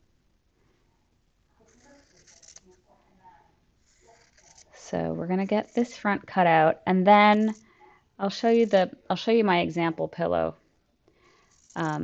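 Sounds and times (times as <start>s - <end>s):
scissors snipping fabric: 1.6s - 2.7s, 3.8s - 4.8s.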